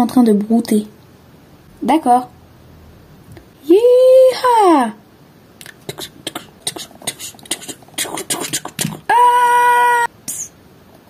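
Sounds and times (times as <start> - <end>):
mouth clicks imitating hoofbeats: 5.6 - 9.1.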